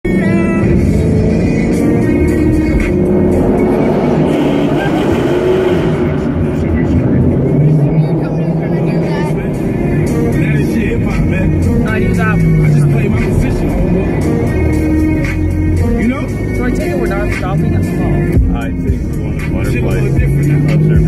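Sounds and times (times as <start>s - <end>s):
muscle car engines at full throttle: 0.0s - 21.0s.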